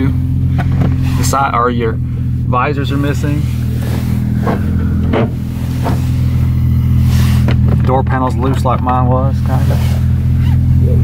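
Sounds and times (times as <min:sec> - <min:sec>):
car engine droning from inside cabin: 0:00.0 - 0:11.0.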